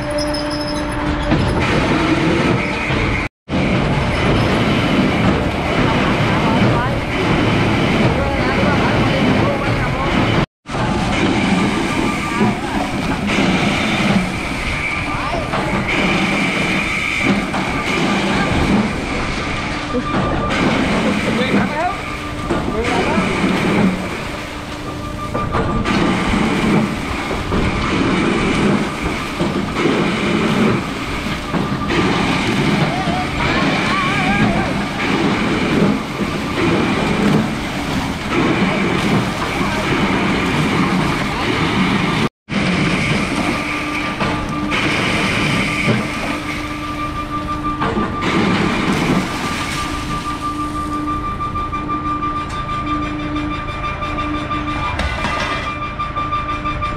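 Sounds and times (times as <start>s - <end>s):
machinery running: 0.0s - 56.9s.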